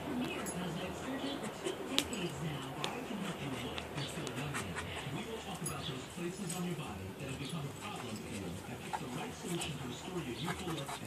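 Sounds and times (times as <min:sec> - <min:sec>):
dogs panting: 0:00.0 - 0:06.6, 0:07.2 - 0:11.0
television voice talking: 0:00.0 - 0:11.0.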